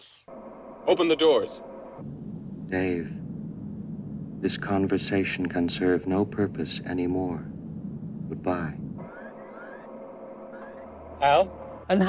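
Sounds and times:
faint electronic hum: 0.2 - 12.0
faint rising chirps: 0.3 - 12.0.

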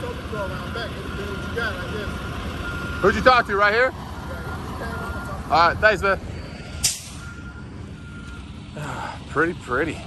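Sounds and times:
diesel engine rumbling: 0.0 - 10.0
backup alarm beeping: 0.4 - 3.6, 4.9 - 9.2
air brakes hissing: 6.4 - 7.5.

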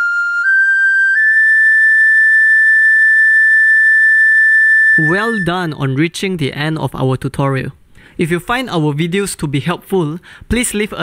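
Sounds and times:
recorder holding high note: 0.0 - 5.8.

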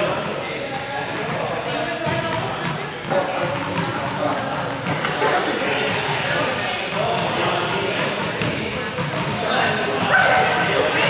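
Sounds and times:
young people chattering: 0.0 - 11.0
balls thudding on floor: 1.2 - 5.2.

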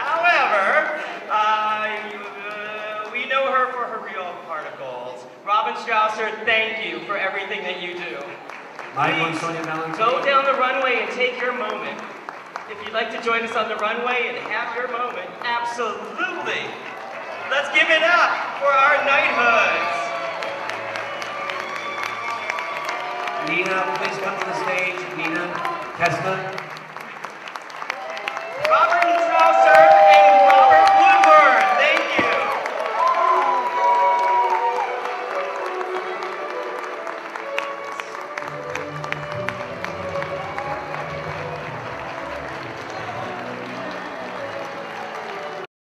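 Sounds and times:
audience applauding: 0.0 - 4.1, 7.0 - 45.7
background music: 0.0 - 27.9, 29.1 - 45.7.

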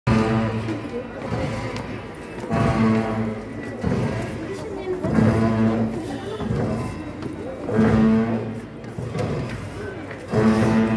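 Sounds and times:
long low ritual notes: 0.1 - 10.9.

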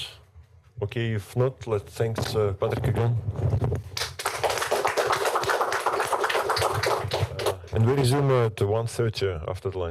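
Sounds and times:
audience applauding: 4.0 - 7.7.

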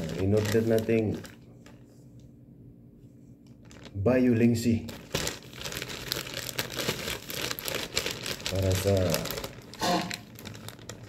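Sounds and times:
plastic bag crinkling and tearing: 0.0 - 1.9, 3.4 - 11.0.

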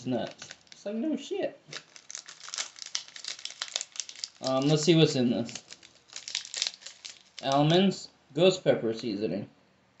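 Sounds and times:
plastic snack bag crinkling: 0.0 - 1.1, 1.7 - 7.8.

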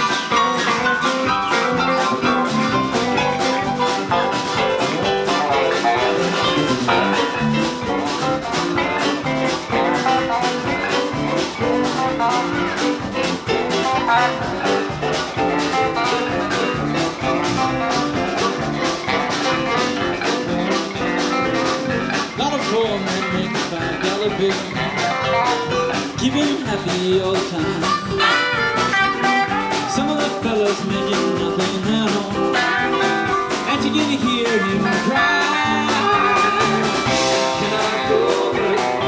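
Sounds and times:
harmonica: 0.0 - 26.4, 27.6 - 30.1, 32.5 - 39.0
live band playing: 0.0 - 39.0
steady drum beat: 0.0 - 39.0.

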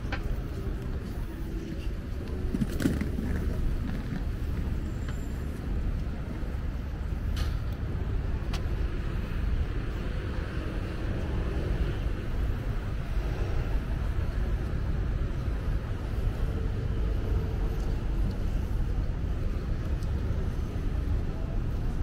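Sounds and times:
road traffic rumble: 0.0 - 22.0.

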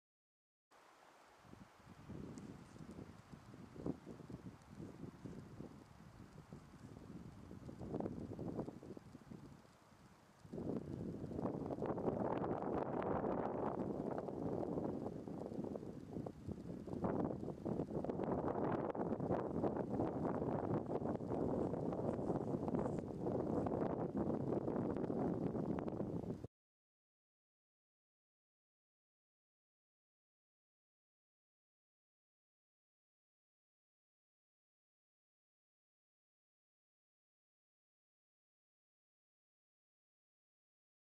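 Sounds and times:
wind on microphone: 1.4 - 26.5.

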